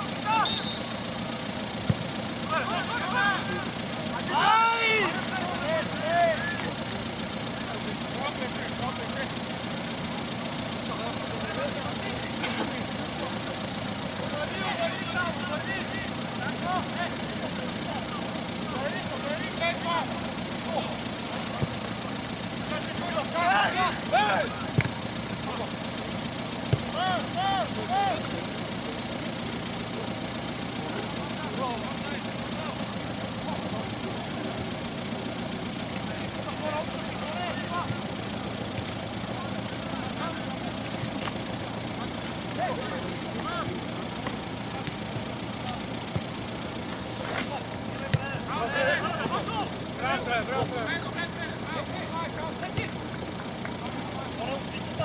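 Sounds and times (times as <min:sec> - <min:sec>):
players shouting: 0:00.0 - 0:55.0
ball being kicked: 0:01.8 - 0:02.1, 0:21.6 - 0:21.8, 0:24.7 - 0:25.1, 0:26.7 - 0:27.0, 0:46.1 - 0:46.3.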